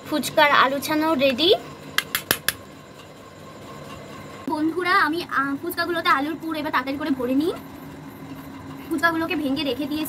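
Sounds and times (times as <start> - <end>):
faint background hum: 0.0 - 10.0.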